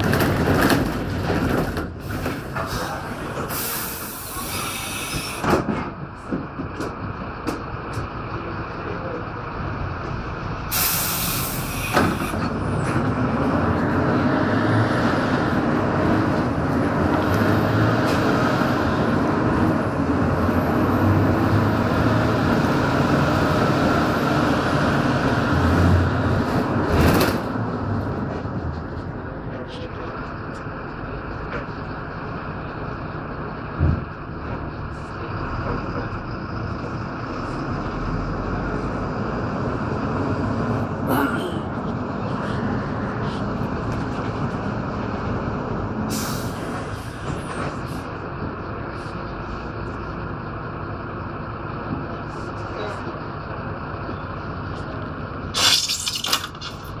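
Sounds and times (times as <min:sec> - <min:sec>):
bus engine and road noise: 0:00.0 - 0:57.0
short loud hisses: 0:10.7 - 0:11.9.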